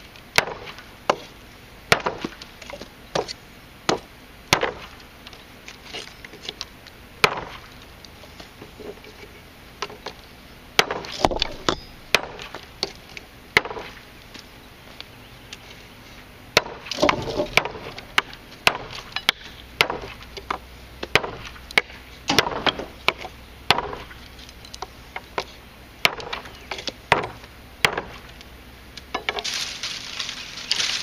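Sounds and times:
knife chopping wooden branch: 1.9s - 2.4s, 21.1s - 24.2s, 27.1s - 28.2s.

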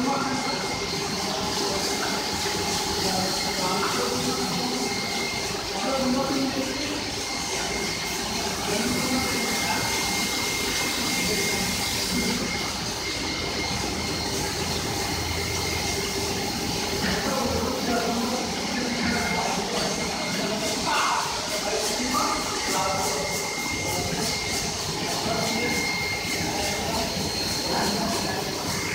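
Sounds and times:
carpet washing machine running: 0.0s - 28.9s
thin high whine: 0.0s - 28.9s.

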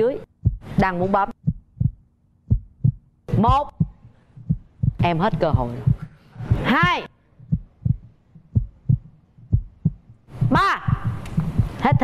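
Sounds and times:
heartbeat thumps: 0.2s - 12.0s.

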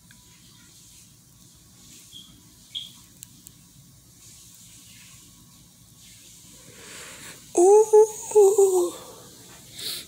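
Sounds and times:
breath hissing in and out: 6.4s - 7.5s, 8.9s - 10.0s.

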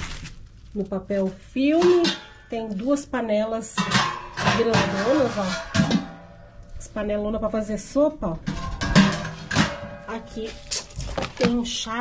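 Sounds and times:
steel pots clanking and scraping: 1.5s - 7.0s, 7.6s - 12.0s
person speaking: 4.5s - 5.6s, 10.1s - 12.0s.

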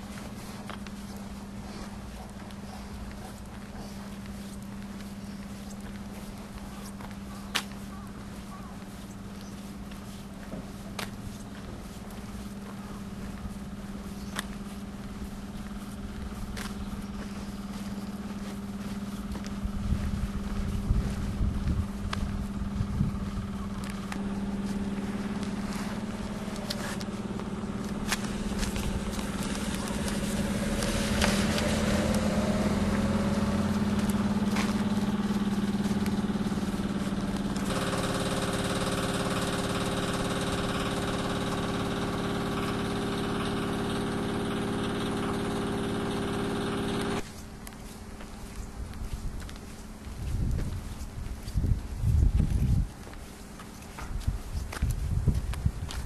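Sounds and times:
low rumbling on microphone: 0.0s - 37.7s, 48.0s - 53.1s, 54.0s - 56.0s
low mechanical hum: 0.0s - 56.0s.

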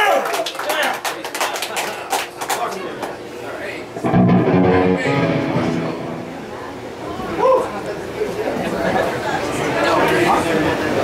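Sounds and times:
crowd chatter: 2.6s - 11.0s.

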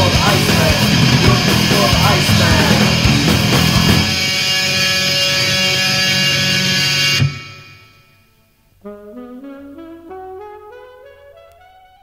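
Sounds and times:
distorted electric guitar chord: 0.0s - 9.0s.

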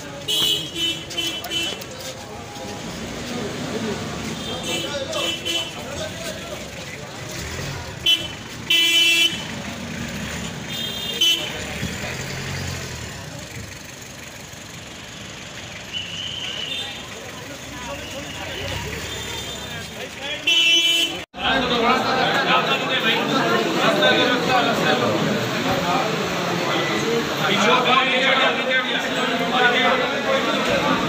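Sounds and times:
crowd murmur: 0.0s - 8.8s, 21.1s - 31.0s
street traffic: 0.0s - 31.0s
vehicle horns honking: 0.2s - 2.0s, 4.2s - 6.0s, 8.0s - 9.7s, 10.6s - 11.9s, 15.9s - 17.2s, 18.0s - 21.3s.

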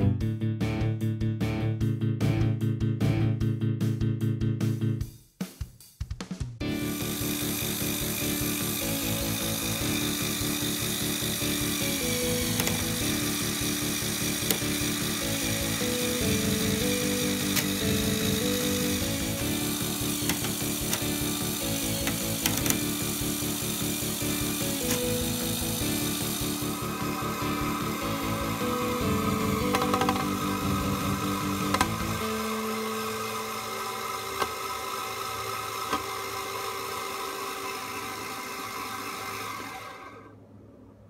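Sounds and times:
background music with held notes: 0.0s - 40.2s
plastic gears whirring: 6.8s - 40.3s.

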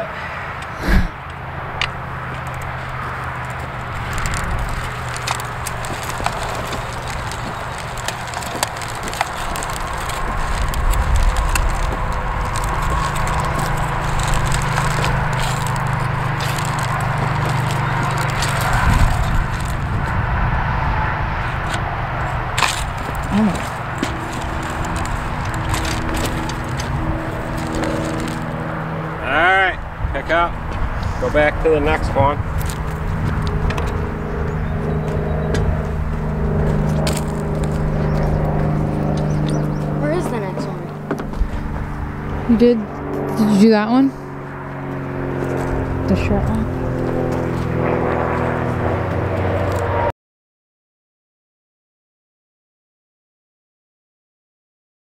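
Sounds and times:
clicks and knocks from wheels: 1.8s - 19.8s
planter rolling over soil: 2.2s - 20.2s, 21.5s - 29.0s, 31.7s - 42.0s, 44.9s - 50.0s.

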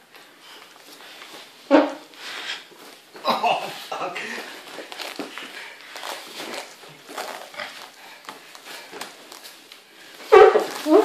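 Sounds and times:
people breathing hard and grunting: 2.1s - 6.2s.

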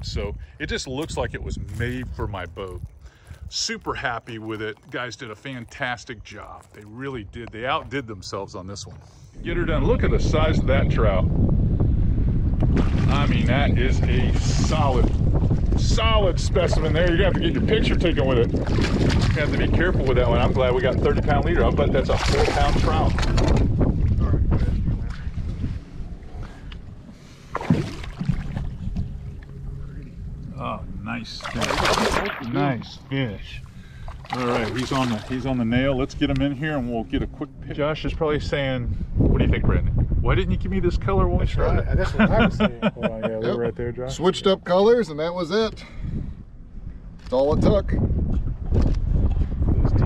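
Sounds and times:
wind buffeting microphone: 0.0s - 44.6s, 45.7s - 50.0s.

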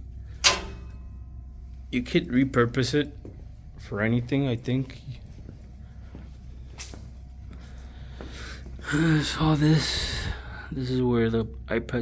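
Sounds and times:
steady low hum: 0.0s - 12.0s
short ringing: 0.3s - 1.4s
sharp click: 0.4s - 1.0s.

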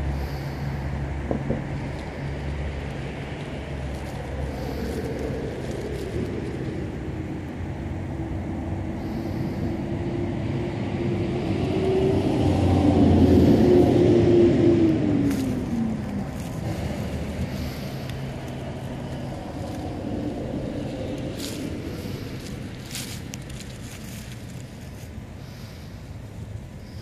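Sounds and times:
road traffic rumble: 0.0s - 27.0s
vehicle passing by: 0.0s - 27.0s.

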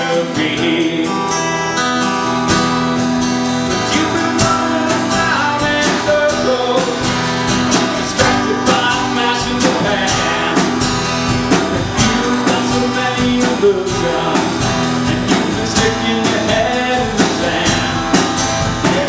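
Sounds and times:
man singing: 0.0s - 2.0s, 3.7s - 19.0s
drum kit beat: 0.0s - 19.0s
strummed acoustic guitar: 0.0s - 19.0s.

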